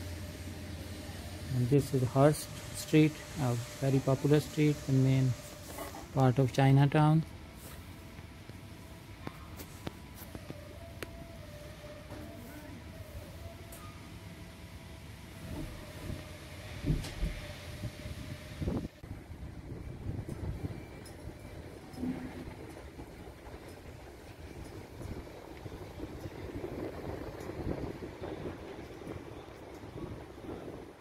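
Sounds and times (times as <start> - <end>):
road traffic rumble: 0.0 - 13.5.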